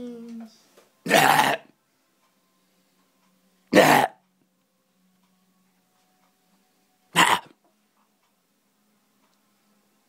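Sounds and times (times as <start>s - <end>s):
harsh vocal burst: 3.7s - 4.2s, 7.2s - 7.5s.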